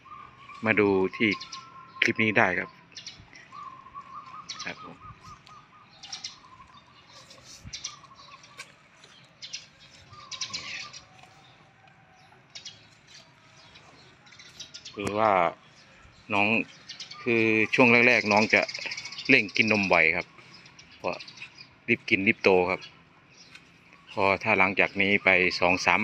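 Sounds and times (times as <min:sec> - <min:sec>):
small birds chirping: 0:00.0 - 0:26.0.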